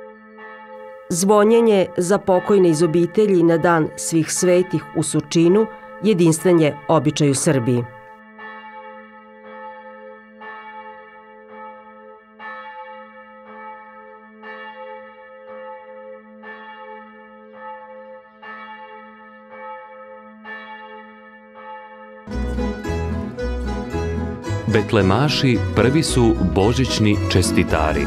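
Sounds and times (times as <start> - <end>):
church bell tolling: 0.0 - 28.0.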